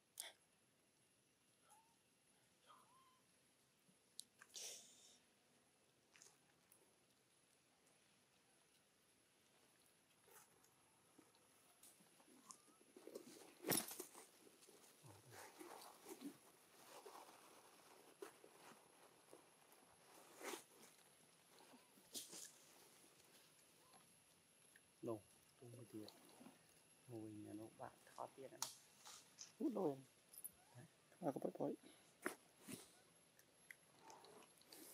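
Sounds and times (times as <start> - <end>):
faint rustling: 8.6 - 31.0.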